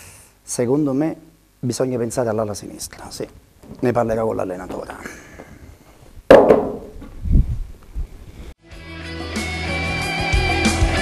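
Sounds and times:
books knocking onto a desk: 6.3 - 7.0.

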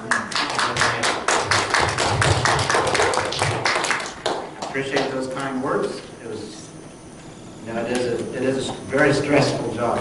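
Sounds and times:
hands clapping rhythmically: 0.0 - 5.4.

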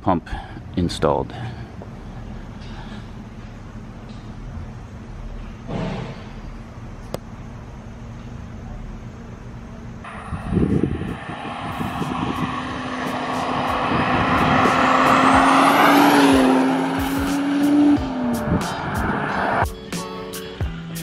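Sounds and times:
car driving past: 10.1 - 19.6.

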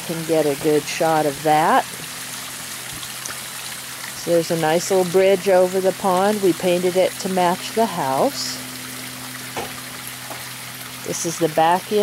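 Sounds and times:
low steady hum: 0.0 - 12.0
waterfall splashing into pond: 0.0 - 12.0.

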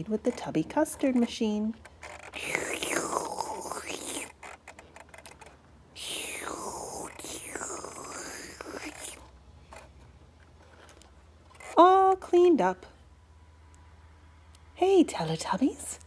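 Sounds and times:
plastic toy clicks: 0.1 - 9.2
person making vacuum noises by mouth: 2.3 - 4.5, 6.0 - 9.3.

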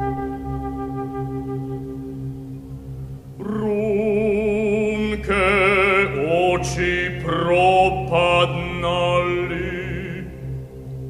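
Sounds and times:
low held note: 0.0 - 11.0
man singing chant-like melody: 3.4 - 10.5.

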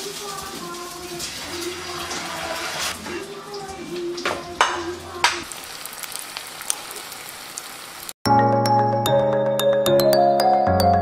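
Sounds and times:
egg sizzling in hot oil: 0.0 - 8.2
small crackles and pops: 5.3 - 8.2.

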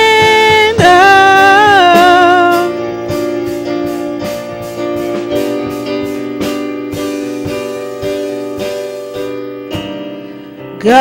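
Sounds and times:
woman singing: 0.0 - 2.9, 10.7 - 11.0
electronic keyboard chords: 0.0 - 11.0.

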